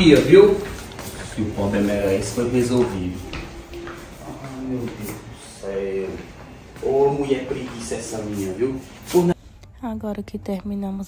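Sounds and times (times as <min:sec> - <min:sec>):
indistinct voices: 0:00.0 - 0:10.8.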